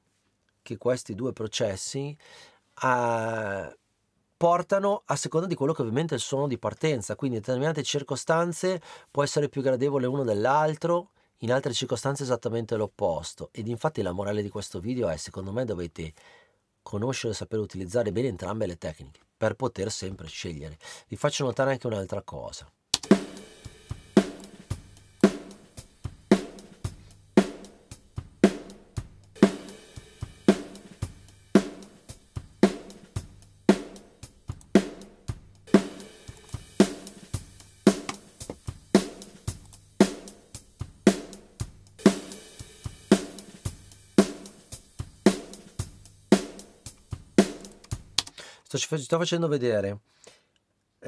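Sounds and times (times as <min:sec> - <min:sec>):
drum kit beat with snare: 0:23.0 - 0:48.5.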